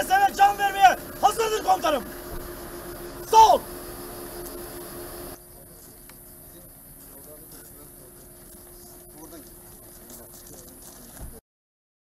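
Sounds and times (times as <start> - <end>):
thin steady hum: 0.0 - 11.3
distant men's voices: 0.0 - 11.4.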